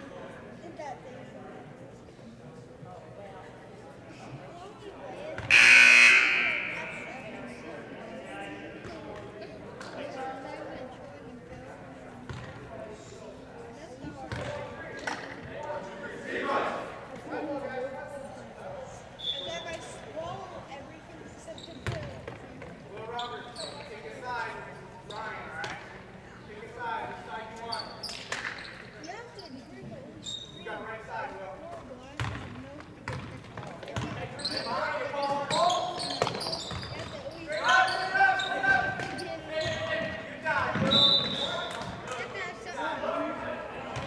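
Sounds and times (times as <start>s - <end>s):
players and spectators shouting: 5.5s - 7.4s
basketball bouncing on court: 12.3s - 12.6s, 14.3s - 14.6s, 21.8s - 22.4s, 32.2s - 34.2s.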